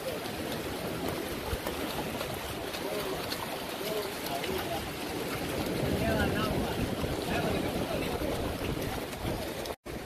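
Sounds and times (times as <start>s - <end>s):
surf washing on shore: 0.0s - 10.0s
wind buffeting microphone: 0.0s - 10.0s.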